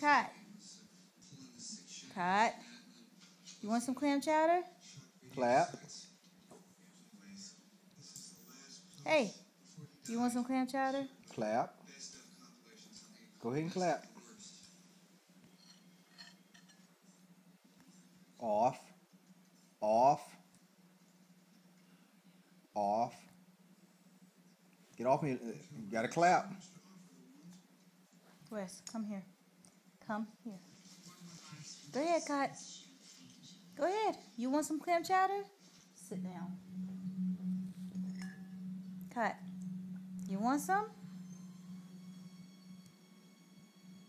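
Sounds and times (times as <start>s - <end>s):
steady low hum: 0.0s - 44.0s
low pure tone hum: 33.4s - 44.0s.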